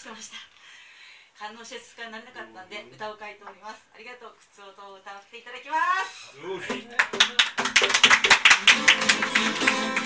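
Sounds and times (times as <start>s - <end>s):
acoustic guitar strumming: 8.7s - 10.0s.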